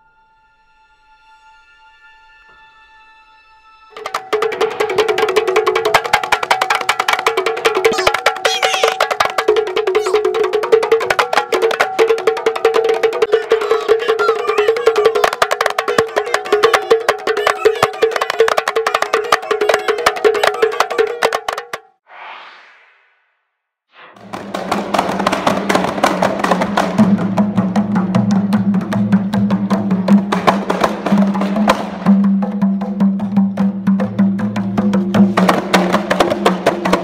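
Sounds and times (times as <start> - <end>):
hand-struck frame drums: 4.0 - 21.9, 24.2 - 37.0.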